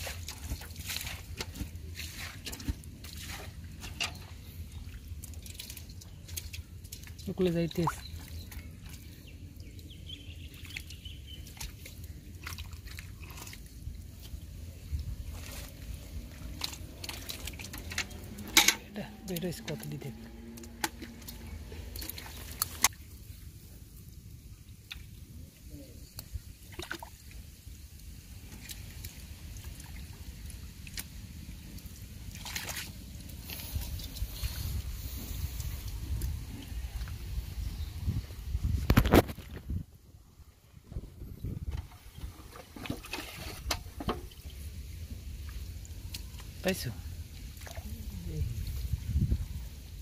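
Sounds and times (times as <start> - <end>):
hand squelching in wet mud: 0.0 - 18.6, 19.2 - 23.1, 28.5 - 38.0
water splashes and drips: 0.0 - 39.8, 40.6 - 50.0.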